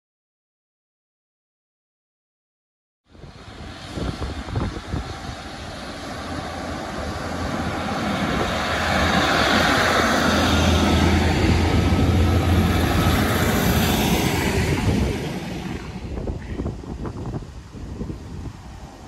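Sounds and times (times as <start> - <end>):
diesel engine drone: 3.2 - 16.8
wheel-on-rail rumble: 3.2 - 19.0.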